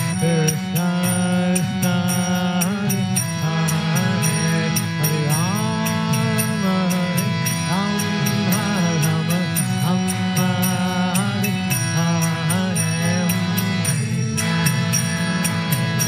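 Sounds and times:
harmonium droning chords: 0.0 - 16.0
man singing a chant: 0.0 - 16.0
percussive beat: 0.0 - 16.0.

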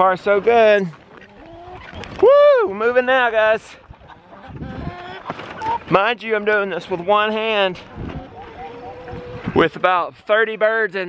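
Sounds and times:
chickens clucking: 0.0 - 2.2, 2.8 - 10.4.

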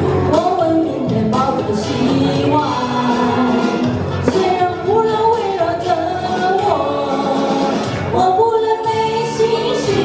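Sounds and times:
backing music through speakers: 0.0 - 10.0
woman singing into microphone: 0.0 - 10.0.

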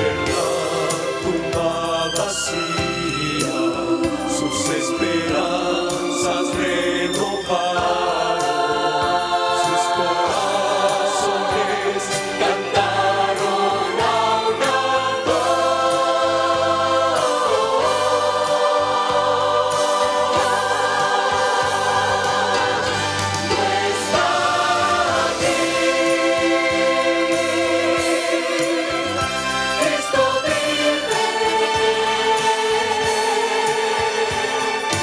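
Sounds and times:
mixed choir singing: 0.0 - 35.0.

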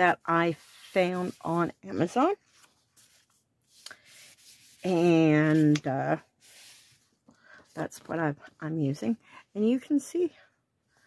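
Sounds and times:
cloth rubbing over paper: 0.0 - 7.1.

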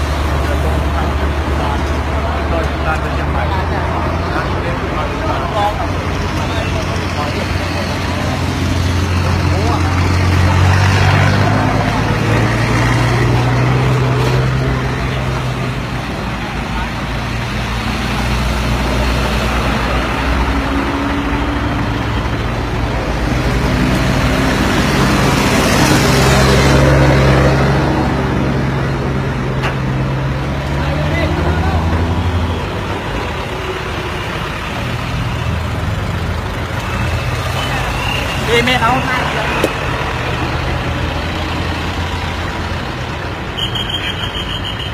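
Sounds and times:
indistinct voices: 0.0 - 43.5
heavy truck engines revving: 0.0 - 44.9.

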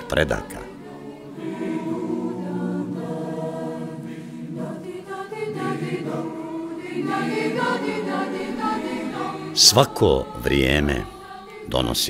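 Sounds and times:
choir singing slow chords: 0.0 - 12.0.

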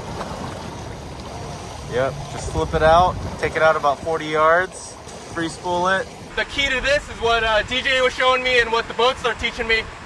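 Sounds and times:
choppy seawater rushing: 0.0 - 10.0.

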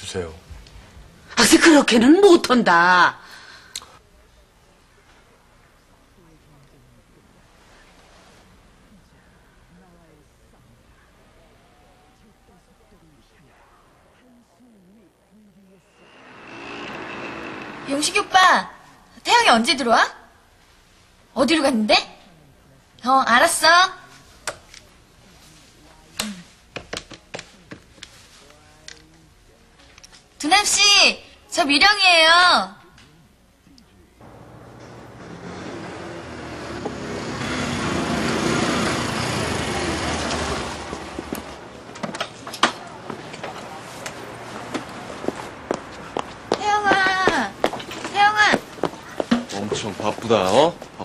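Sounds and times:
woman's voice: 1.3 - 3.4, 17.9 - 20.2, 30.4 - 32.8, 46.5 - 48.7
scooter engine passing: 15.9 - 18.9, 34.2 - 41.8
street traffic noise: 15.9 - 19.0, 34.2 - 51.0.

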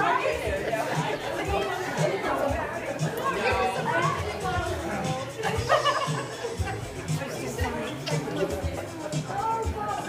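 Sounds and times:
background music with steady beat: 0.0 - 10.0
people chattering: 0.0 - 10.0.

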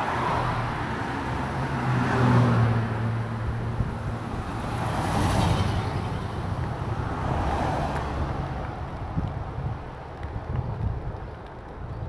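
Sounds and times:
car passing by: 0.0 - 3.4, 4.0 - 9.2.

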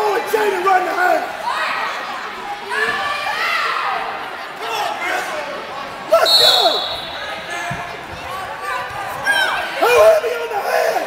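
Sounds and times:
referee's whistle blast: 6.2 - 7.3.

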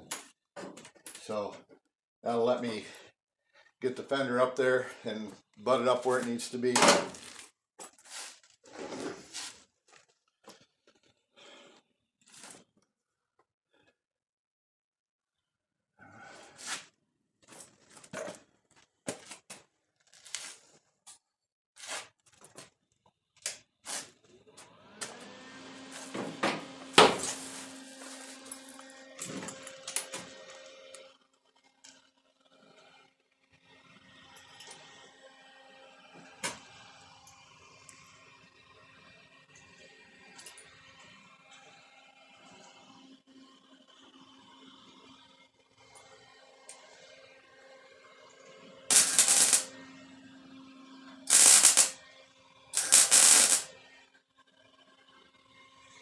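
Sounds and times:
tack welding bursts: 27.0 - 28.3, 48.9 - 49.7, 51.3 - 52.0, 52.8 - 53.7.

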